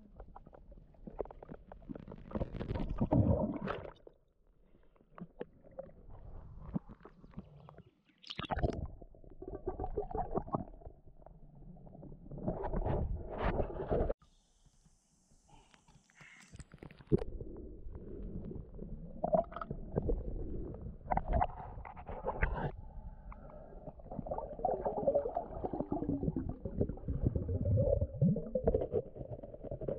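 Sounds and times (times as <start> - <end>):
water sloshing and gurgling: 0.0 - 14.2, 17.1 - 29.9.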